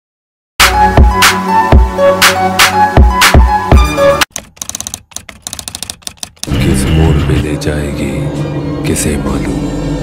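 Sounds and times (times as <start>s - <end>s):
music: 0.6s - 4.3s, 6.5s - 10.0s
rapid typewriter key clicks: 4.3s - 6.5s.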